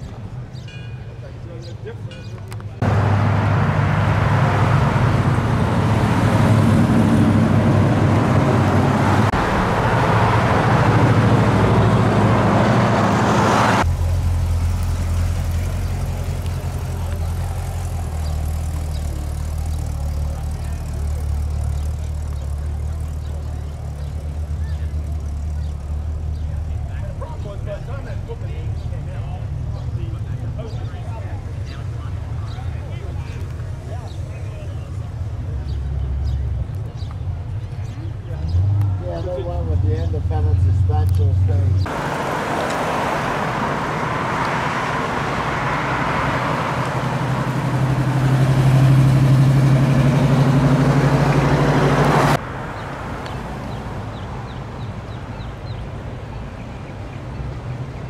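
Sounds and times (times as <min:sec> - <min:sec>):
cars driving past: 0:02.8 - 0:58.0
low engine hum idling: 0:13.8 - 0:29.1.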